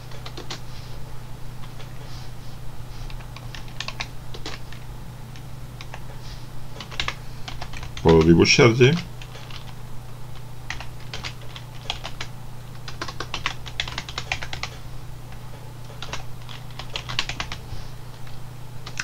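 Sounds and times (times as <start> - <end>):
computer keyboard typing: 0.0 - 0.6, 3.1 - 4.8, 5.8 - 6.1, 6.7 - 14.8, 15.9 - 17.6
faint low hum: 0.0 - 19.0.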